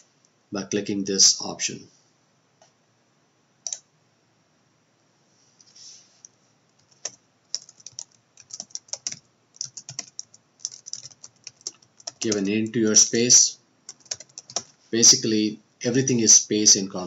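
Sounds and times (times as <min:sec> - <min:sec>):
computer keyboard typing: 0:03.6 - 0:03.8, 0:06.8 - 0:13.0, 0:13.9 - 0:14.8.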